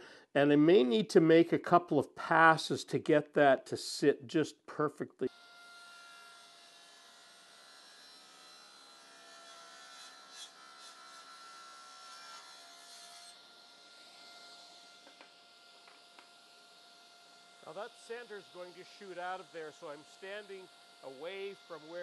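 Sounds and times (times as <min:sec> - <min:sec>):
table saw whining and cutting: 0:05.3 - 0:22.0.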